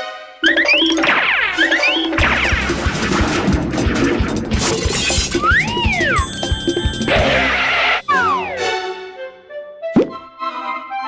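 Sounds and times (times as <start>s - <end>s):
upbeat cartoon music: 0.0s - 11.0s.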